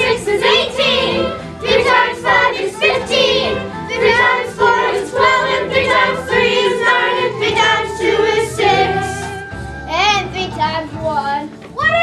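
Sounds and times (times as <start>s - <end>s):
children singing together: 0.0s - 9.6s
musical accompaniment: 0.0s - 12.0s.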